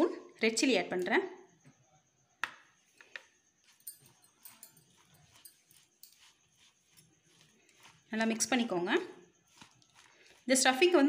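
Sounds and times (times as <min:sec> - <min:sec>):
plastic spoon scraping in bowl: 0:03.7 - 0:11.0.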